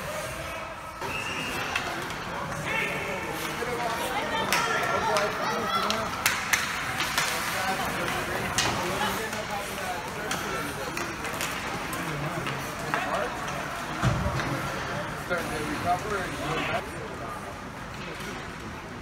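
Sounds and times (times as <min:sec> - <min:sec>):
hockey sticks and puck clacking: 0:01.0 - 0:16.6
skate blades scraping ice: 0:01.5 - 0:13.9.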